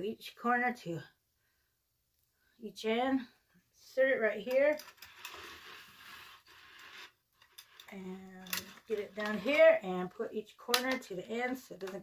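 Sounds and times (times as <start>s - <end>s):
wire rustling and scraping: 4.5s - 9.9s.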